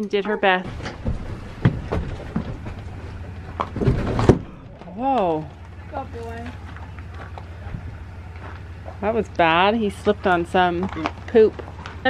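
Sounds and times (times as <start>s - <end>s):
horse hooves on pavement: 0.0s - 12.0s.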